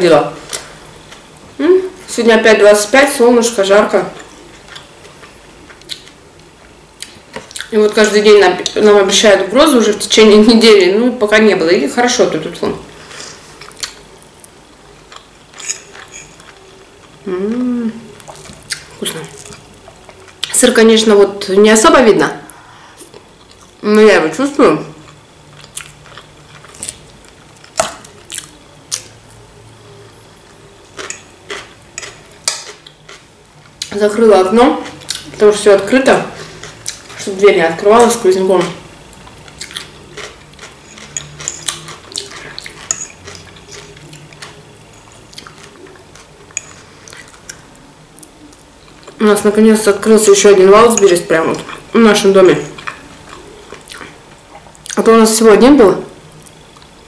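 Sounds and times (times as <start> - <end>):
quiet chewing: 4.2 - 7.7, 13.0 - 20.6, 22.5 - 23.8, 25.0 - 29.1, 30.4 - 33.9, 36.4 - 37.3, 38.6 - 49.2, 52.6 - 55.0.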